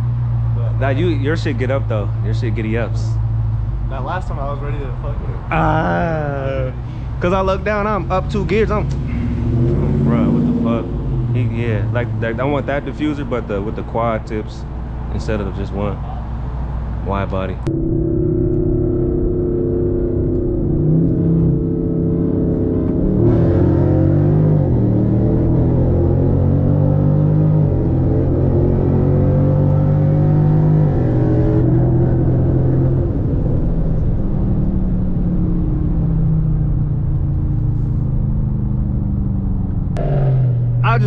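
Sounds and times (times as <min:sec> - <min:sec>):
road and wind noise: 0:00.0 - 0:41.0
car engine from inside cabin: 0:17.6 - 0:41.0.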